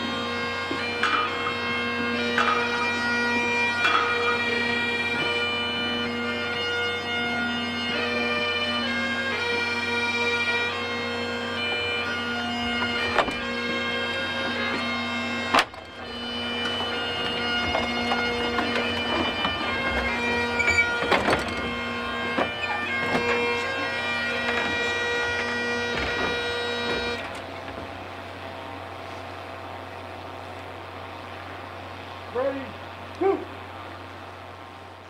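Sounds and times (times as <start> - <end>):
bagpipes playing slow tune: 0.0 - 35.0.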